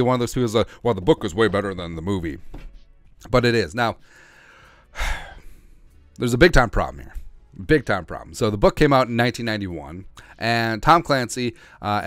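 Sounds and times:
man sighing: 4.3 - 5.5.

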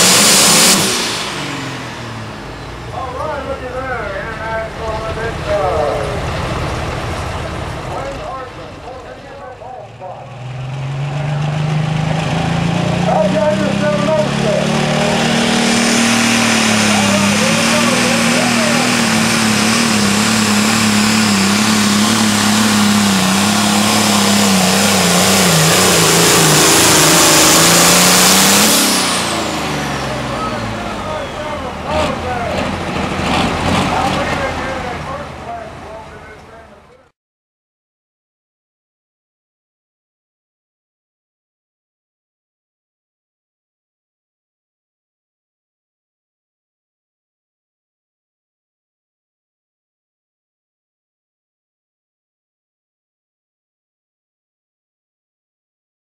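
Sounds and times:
tractor engine under full load: 0.0 - 37.1.

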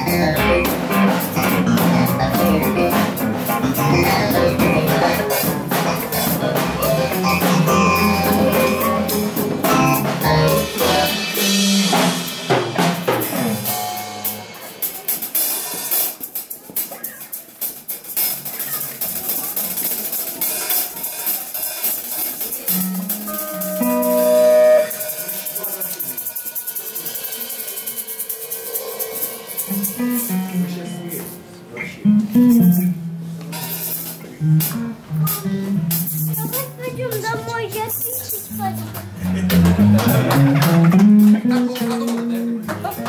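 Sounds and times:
electric guitar: 0.0 - 15.9, 21.8 - 26.6, 27.9 - 43.0
drums: 0.0 - 43.0
small band playing live: 0.0 - 43.0.

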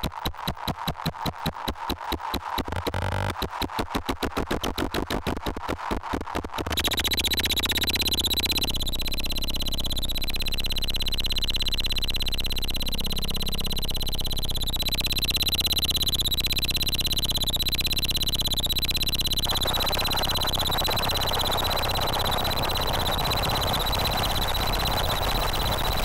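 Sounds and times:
electronic noise instrument: 6.6 - 26.0.

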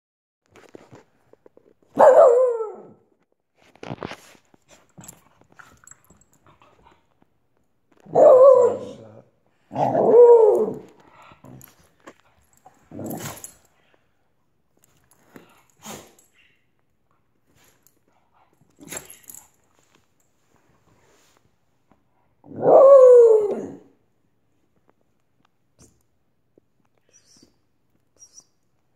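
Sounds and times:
dog barking playfully: 2.0 - 2.8.

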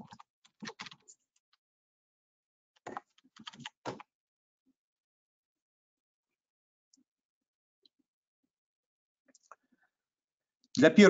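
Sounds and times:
computer keyboard typing: 0.1 - 1.0, 2.9 - 4.0.

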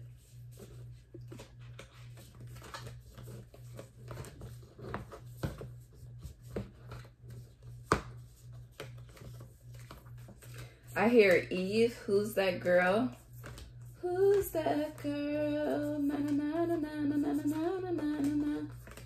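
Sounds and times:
cards and pages rustling: 0.0 - 19.0
steady low hum: 0.0 - 19.0.

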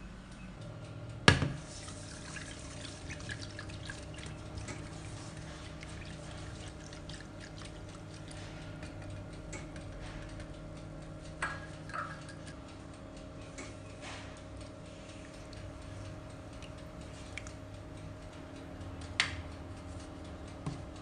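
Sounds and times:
steady low hum: 0.0 - 21.0
whisk tapping saucepan: 1.3 - 10.0, 11.4 - 12.6.

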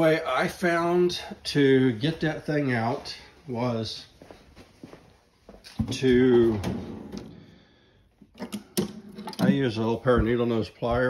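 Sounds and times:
footsteps on concrete floor: 1.9 - 7.3, 10.0 - 11.0.

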